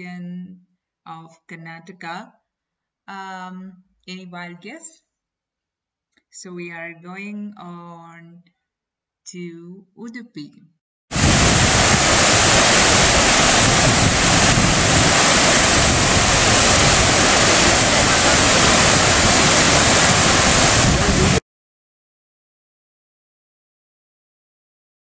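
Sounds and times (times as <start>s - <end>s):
stream rushing over rocks: 11.1s - 21.4s.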